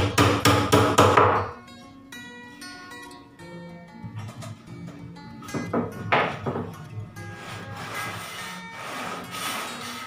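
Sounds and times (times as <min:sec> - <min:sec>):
hammer striking wooden board: 0:00.0 - 0:01.5.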